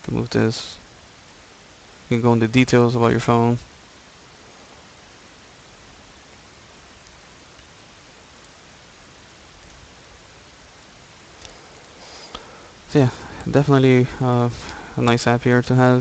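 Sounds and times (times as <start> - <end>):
low background hiss: 0.0 - 16.0.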